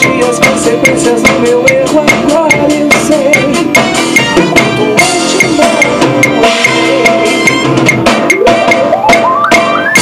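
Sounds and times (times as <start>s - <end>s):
band backing track: 0.0s - 10.0s
drum kit playing: 0.0s - 10.0s.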